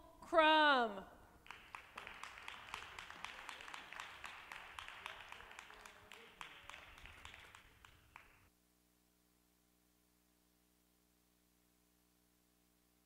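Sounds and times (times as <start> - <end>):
light applause: 1.4 - 8.5.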